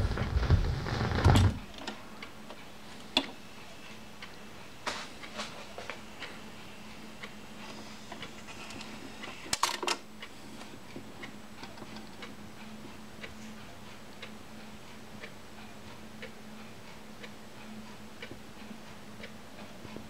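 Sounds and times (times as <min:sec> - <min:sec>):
vinyl surface hiss: 0:00.0 - 0:04.1, 0:04.8 - 0:09.6
steady low hum: 0:00.0 - 0:20.0.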